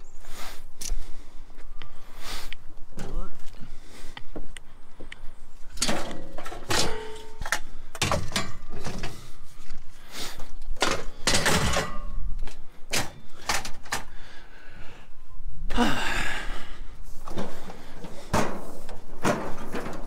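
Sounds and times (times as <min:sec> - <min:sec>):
scrap metal clanging and scraping: 0:05.7 - 0:09.5, 0:10.8 - 0:12.2, 0:17.2 - 0:20.0.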